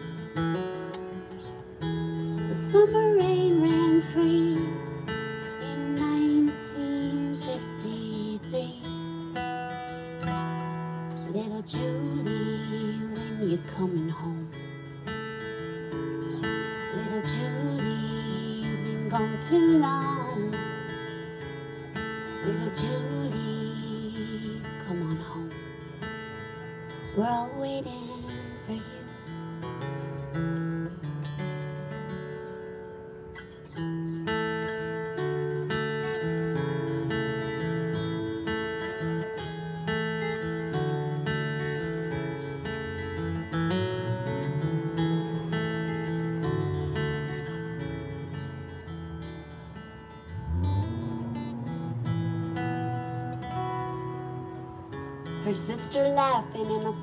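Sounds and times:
acoustic guitar playing chords: 0.0 - 57.0.

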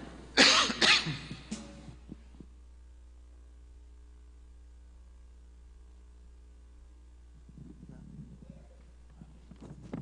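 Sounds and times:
low steady hum: 0.0 - 10.0
person coughing: 0.4 - 1.5.

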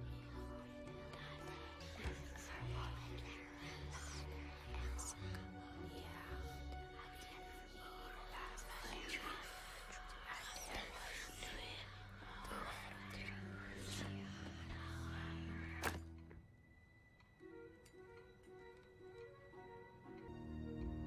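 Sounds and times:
breathy whispering: 0.0 - 16.1
low drone tones: 0.0 - 21.0.

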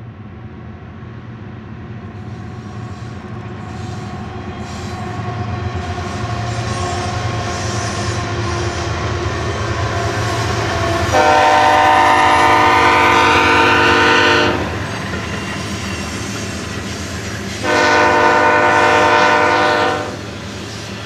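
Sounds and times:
diesel locomotives passing: 0.0 - 21.0
locomotive air horn blast: 11.1 - 14.8, 17.6 - 20.2.

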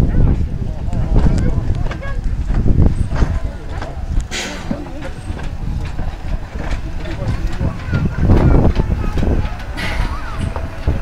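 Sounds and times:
locomotive low rumble: 0.0 - 11.0
people talking: 0.0 - 11.0
steam hissing: 2.8 - 11.0.

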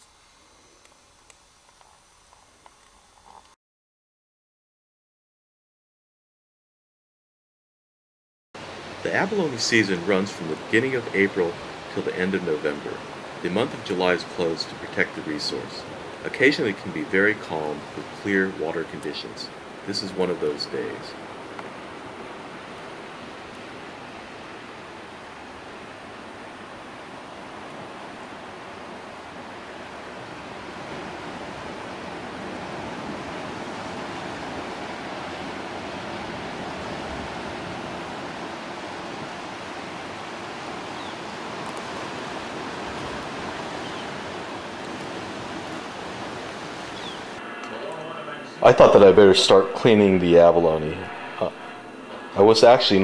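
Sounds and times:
ocean water rushing: 8.6 - 53.0.

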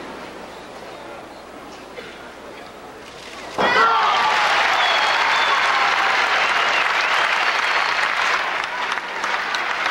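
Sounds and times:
crowd applauding: 3.8 - 9.9.

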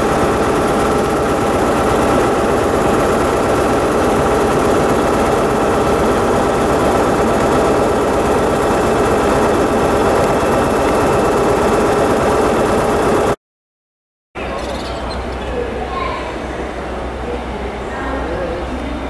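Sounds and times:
train diesel engines droning: 0.0 - 13.4, 14.4 - 19.0.

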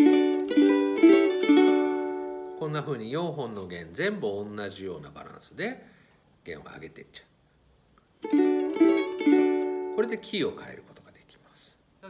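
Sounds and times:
ukulele chord strums: 0.0 - 3.0, 8.2 - 10.4.

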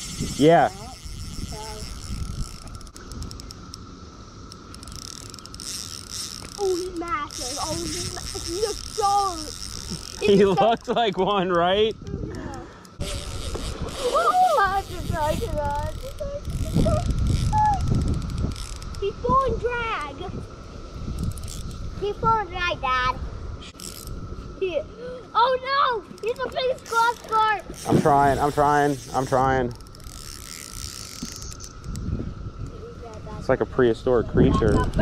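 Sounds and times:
fishing reel drag clicking: 0.0 - 20.2, 21.0 - 21.9, 23.6 - 24.4, 26.0 - 33.3, 34.4 - 35.0
steady high whine: 0.0 - 35.0.

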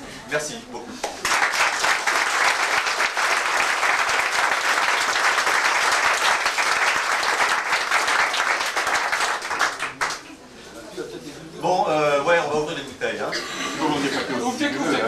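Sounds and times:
crowd applauding: 1.0 - 10.3.

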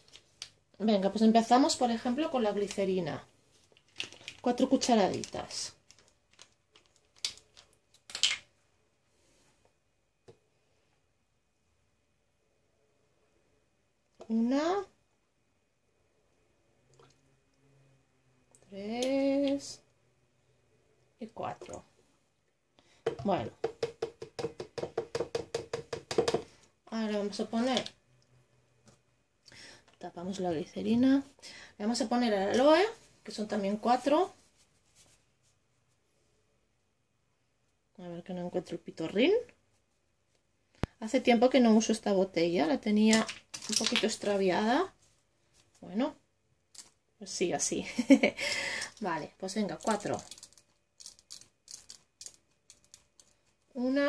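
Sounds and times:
plastic spoon knocking on jug: 23.0 - 26.5.

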